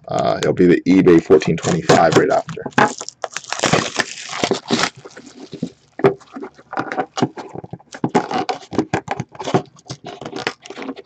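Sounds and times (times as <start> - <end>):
plastic shrink-wrap tearing and crinkling: 1.7 - 7.2, 9.4 - 11.0.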